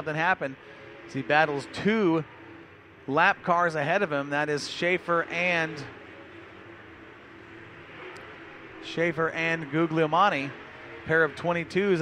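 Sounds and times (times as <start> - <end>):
distant race car engines: 0.0 - 12.0.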